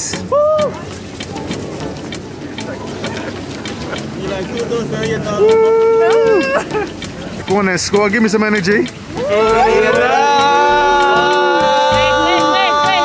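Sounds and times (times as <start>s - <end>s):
voices of people walking: 0.0s - 13.0s
person shouting: 9.2s - 13.0s.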